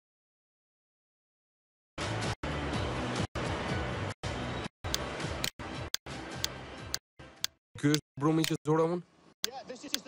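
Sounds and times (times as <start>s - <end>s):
background music: 2.0s - 8.6s
sharp click: 6.4s - 8.6s.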